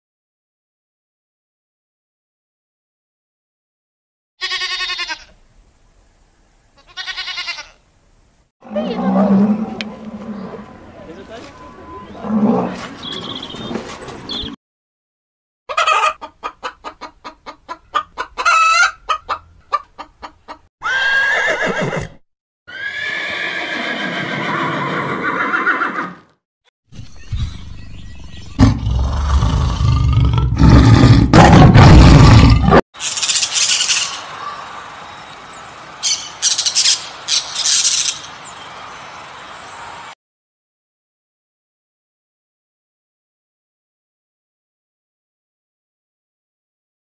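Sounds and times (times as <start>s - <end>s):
tiger growling: 12.1s - 12.8s, 28.6s - 32.8s
hens clucking: 15.7s - 20.6s.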